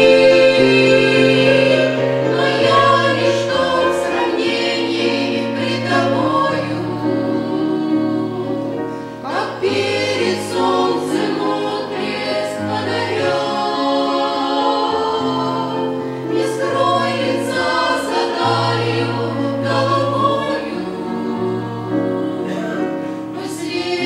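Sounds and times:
women singing a hymn in harmony: 0:00.0 - 0:24.0.

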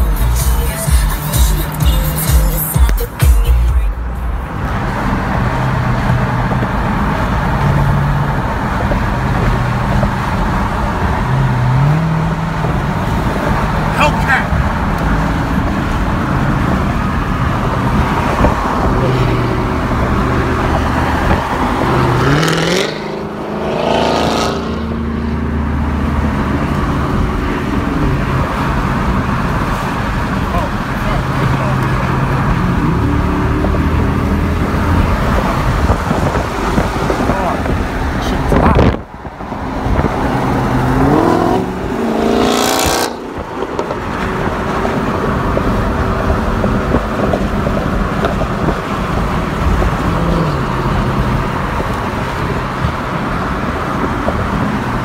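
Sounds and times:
car road and engine noise: 0:00.0 - 0:55.0.

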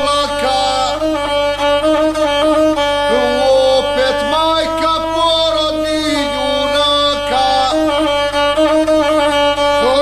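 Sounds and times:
bowed folk fiddle melody: 0:00.0 - 0:10.0.

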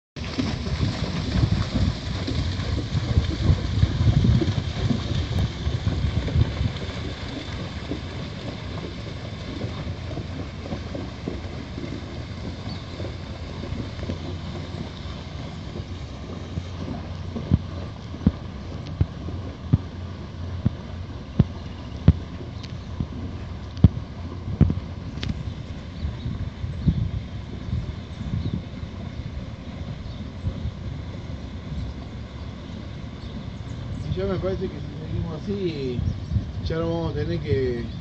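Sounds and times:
wind buffeting microphone: 0:00.2 - 0:38.0.

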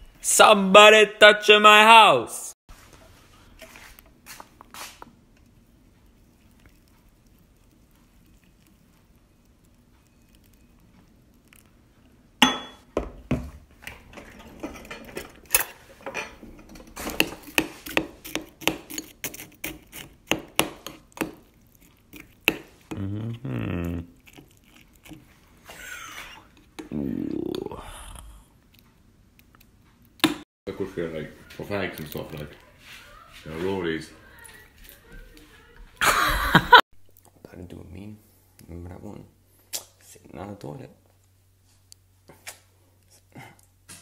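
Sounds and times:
cutlery scraping ceramic bowl: 0:14.1 - 0:23.0.

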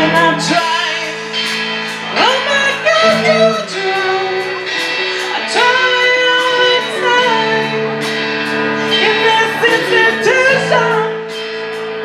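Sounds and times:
electric and acoustic guitars: 0:00.0 - 0:12.0
woman singing long notes: 0:02.0 - 0:11.5.

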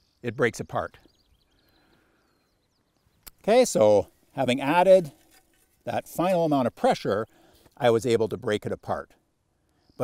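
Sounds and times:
faint high bird chirps: 0:00.0 - 0:04.4.

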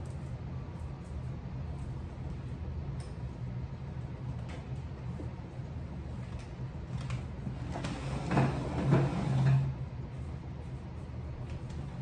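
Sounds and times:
steady low rumble: 0:00.0 - 0:07.8.

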